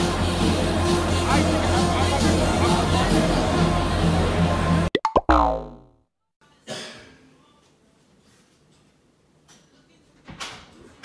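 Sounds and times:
cartoon boing: 5.0 - 6.0.

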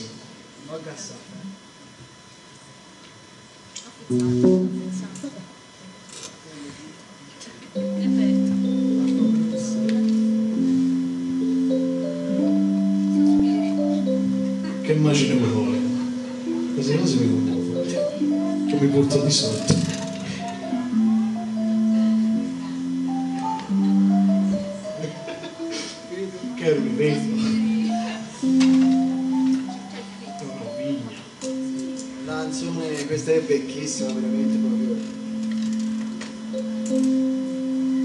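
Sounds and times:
low sustained instrument note: 4.1 - 5.5, 7.7 - 38.0.

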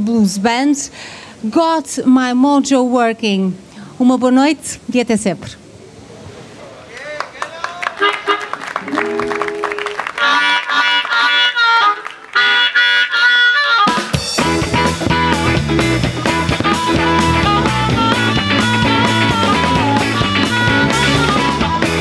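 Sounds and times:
blues harmonica: 8.0 - 22.0
electric guitars: 8.1 - 22.0
bass guitar: 9.0 - 22.0
drum kit: 13.8 - 22.0.

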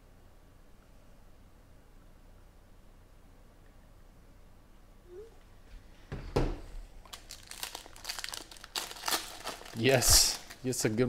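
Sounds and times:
foil wrapper crinkling: 7.0 - 11.0.

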